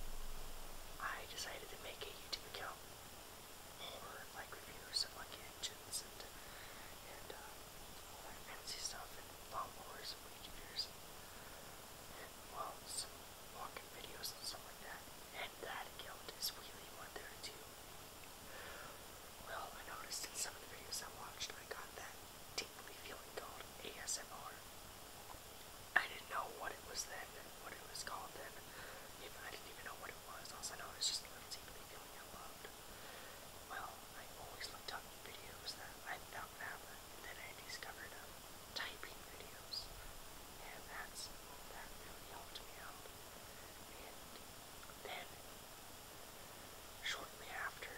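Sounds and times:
person whispering: 1.0 - 2.8, 3.8 - 10.9, 12.1 - 17.6, 18.5 - 24.6, 26.0 - 40.0, 40.6 - 45.4, 47.0 - 47.9.

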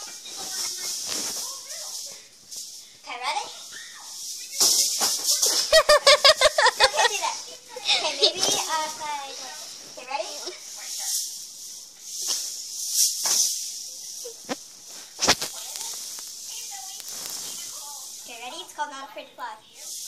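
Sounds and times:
soft hissy sounds: 0.0 - 20.0
laugh-like bursts: 5.7 - 8.4
children's voices: 5.8 - 10.6.

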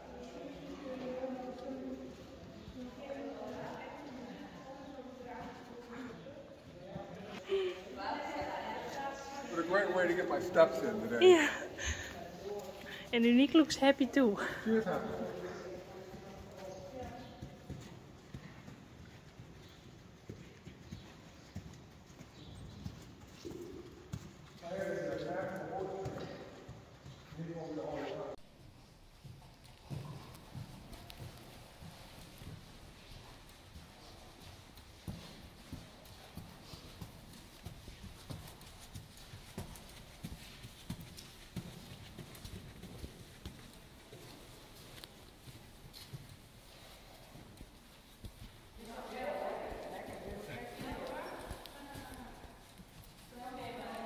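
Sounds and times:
horse hooves on sand: 0.0 - 54.0.

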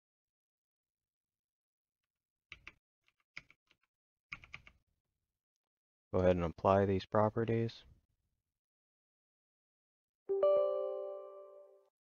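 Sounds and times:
computer keyboard keystrokes: 2.5 - 4.8.

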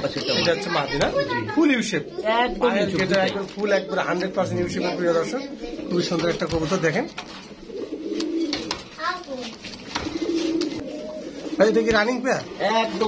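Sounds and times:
pigeons cooing: 0.0 - 13.0.

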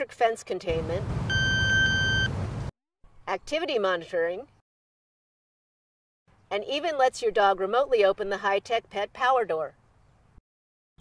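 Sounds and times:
electronic beep: 1.3 - 2.3.

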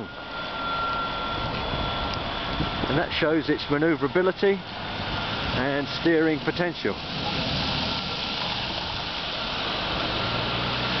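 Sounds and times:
truck diesel engine running: 0.0 - 11.0.

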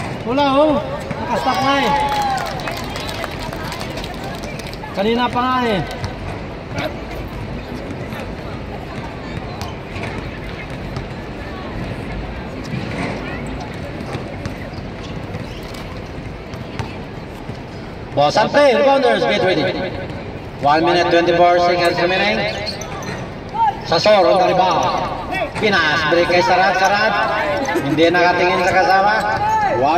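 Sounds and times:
crowd chatter: 0.0 - 29.9
murmur of spectators: 0.0 - 29.9
basketball bouncing on hard court: 13.6 - 18.2.

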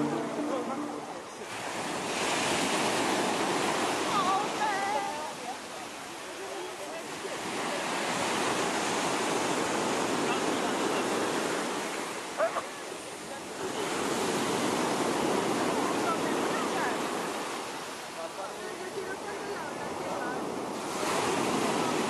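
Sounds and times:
surf washing up pebbly beach: 0.0 - 22.0.

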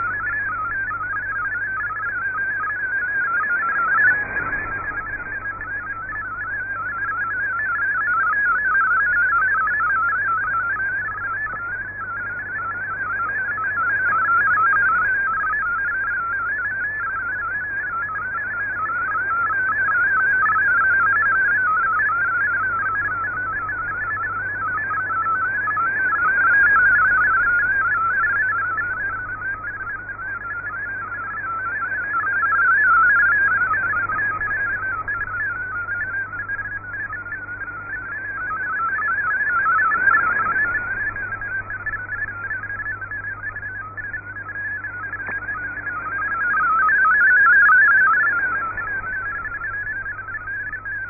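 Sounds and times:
warbling digital radio beeps: 0.0 - 51.0.

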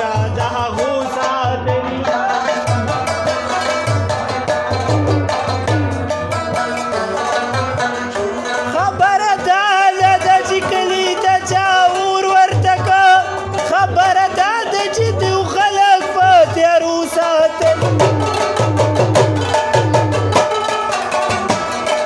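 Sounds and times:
clay-pot drum beat: 0.0 - 22.0
plucked lutes ensemble: 0.0 - 22.0.

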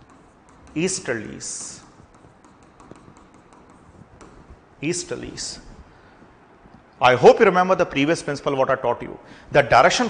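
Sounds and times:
stylus pen tapping on touchscreen: 0.0 - 0.9, 2.0 - 4.5.

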